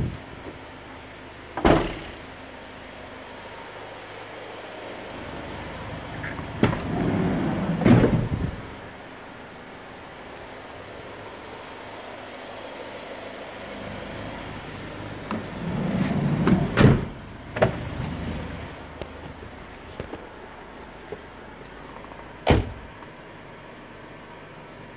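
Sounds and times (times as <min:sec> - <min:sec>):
door slamming with loud latch: 0:01.6 - 0:02.3, 0:07.8 - 0:08.6, 0:16.4 - 0:17.8, 0:22.4 - 0:22.9
sliding van door rumbling: 0:06.0 - 0:08.8, 0:15.2 - 0:19.4.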